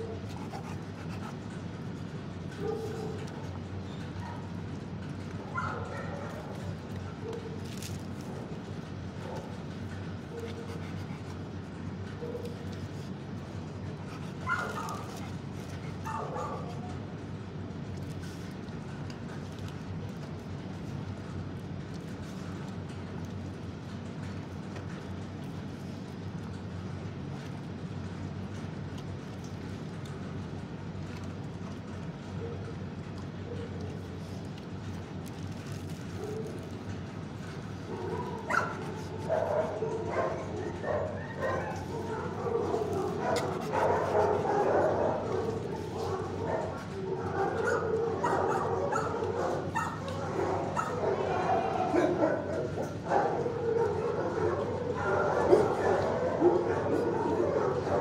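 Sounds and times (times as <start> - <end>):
steady low hum: 0.0 - 58.0
dogs yipping and barking: 5.4 - 7.6, 13.6 - 17.0, 37.7 - 58.0.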